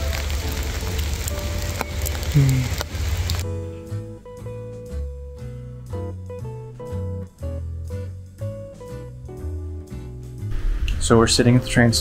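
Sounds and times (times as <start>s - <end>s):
rain falling on an umbrella: 0.0s - 3.5s
acoustic guitar music: 0.0s - 12.0s
soft background music: 0.0s - 12.0s.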